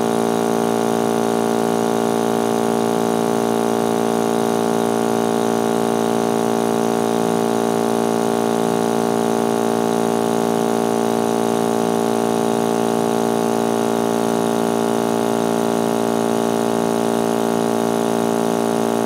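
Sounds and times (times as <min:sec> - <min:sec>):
vacuum pump droning: 0:00.0 - 0:19.0.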